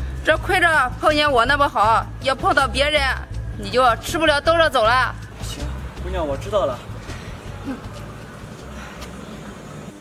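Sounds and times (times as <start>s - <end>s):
street rumble: 0.0s - 10.0s.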